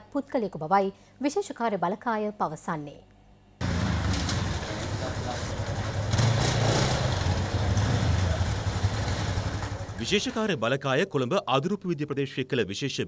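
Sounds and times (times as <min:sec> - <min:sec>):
motorcycle engine rumbling: 0:03.6 - 0:10.5
street noise: 0:03.6 - 0:10.5.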